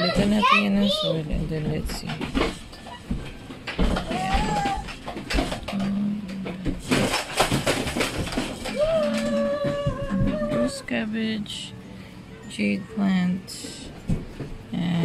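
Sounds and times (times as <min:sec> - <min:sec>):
plastic pots crinkling and clicking: 0:01.8 - 0:10.8.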